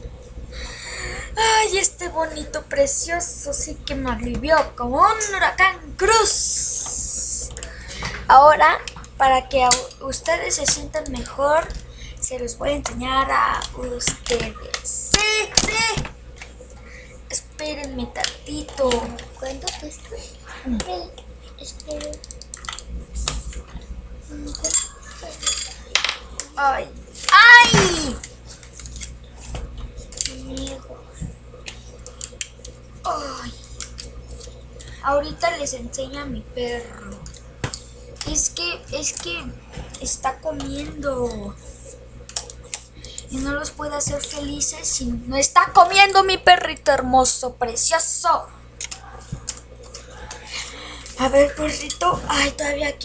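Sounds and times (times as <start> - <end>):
boy breathing: 0.5 - 1.4, 50.2 - 51.2.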